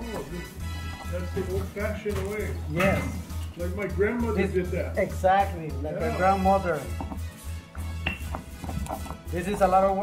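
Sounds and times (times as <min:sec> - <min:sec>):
background music: 0:00.0 - 0:10.0
stone pestle grinding and knocking: 0:06.9 - 0:09.7.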